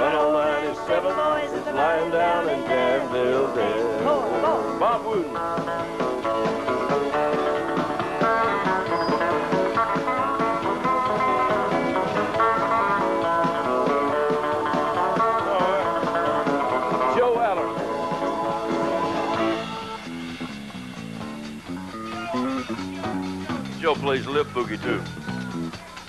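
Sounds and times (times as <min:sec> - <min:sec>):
country band playing: 0:00.0 - 0:26.0.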